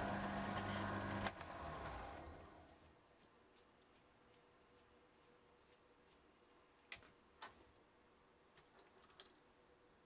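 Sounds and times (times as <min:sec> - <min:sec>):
brush sweeping metal shavings: 0:02.5 - 0:06.4.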